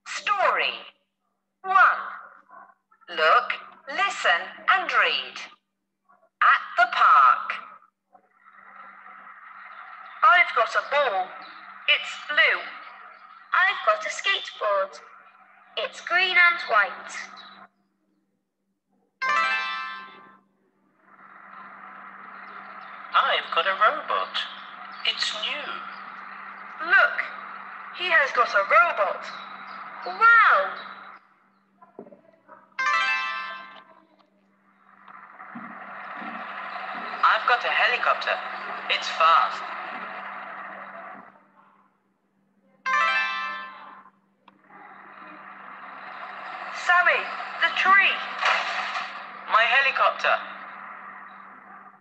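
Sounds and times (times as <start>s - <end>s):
faint low hum: 0.0s - 19.2s, 20.1s - 32.8s, 33.5s - 42.9s, 43.6s - 52.0s
rushing noise: 21.0s - 31.2s, 34.8s - 41.3s, 44.7s - 52.0s.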